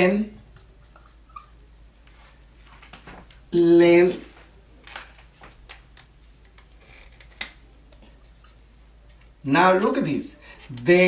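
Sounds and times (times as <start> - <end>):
marker squeak: 1.0 - 1.6.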